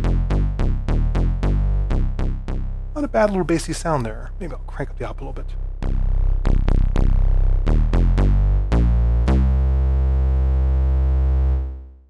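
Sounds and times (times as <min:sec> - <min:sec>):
bassy synthesizer note: 0:00.0 - 0:12.0.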